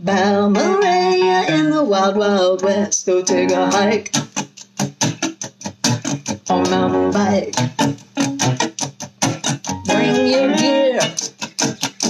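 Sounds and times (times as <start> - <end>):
electric guitar choppy strumming: 0.0 - 12.0.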